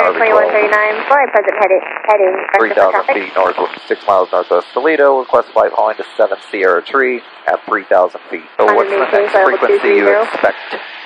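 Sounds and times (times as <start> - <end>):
man talking in radio-like voice: 0.0 - 0.7, 2.5 - 10.8.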